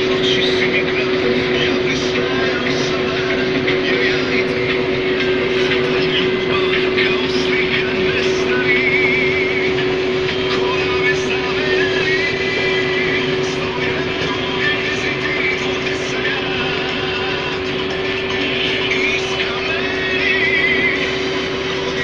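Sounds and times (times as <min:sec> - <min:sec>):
combine harvester running: 0:00.0 - 0:22.0.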